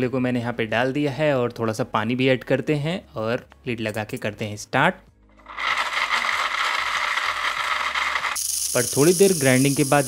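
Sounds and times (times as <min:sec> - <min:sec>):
mixer grinder whirring: 0:05.4 - 0:09.3
pieces rattling in steel jar: 0:05.5 - 0:09.8.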